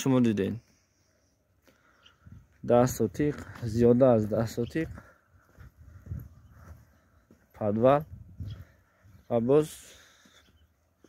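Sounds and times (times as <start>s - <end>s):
soft footsteps on dirt: 0.4s - 11.0s.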